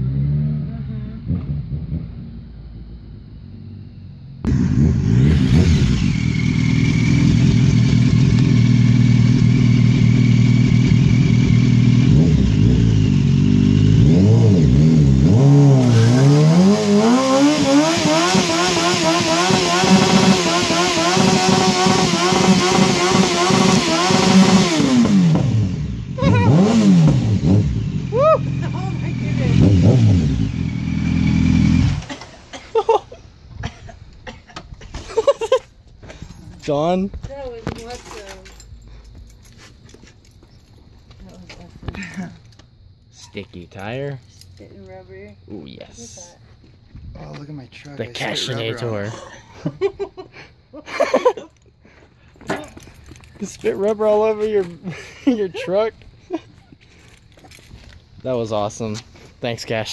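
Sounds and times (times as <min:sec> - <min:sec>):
motorcycle engine revving hard: 0:00.0 - 0:02.4, 0:04.5 - 0:32.4
distant car spinning tyres: 0:04.5 - 0:33.4.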